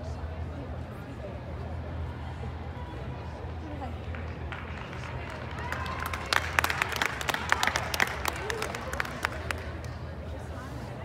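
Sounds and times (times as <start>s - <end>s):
steady low hum: 0.0s - 11.0s
scattered hand clapping: 4.0s - 10.0s.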